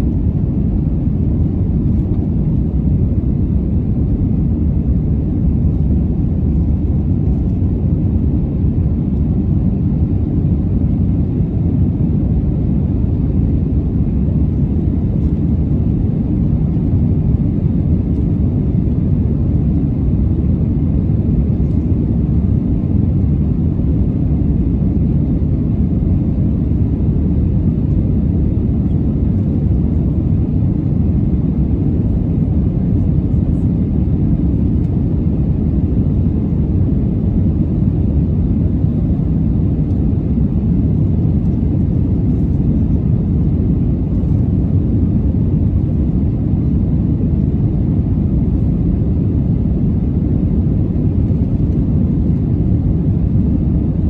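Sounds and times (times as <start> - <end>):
airplane cabin engine rumble: 0.0 - 54.0.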